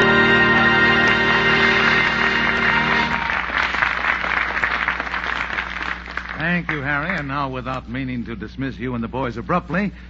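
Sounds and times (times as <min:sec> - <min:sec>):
orchestra holding final chord: 0:00.0 - 0:03.5
audience applauding: 0:00.0 - 0:07.3.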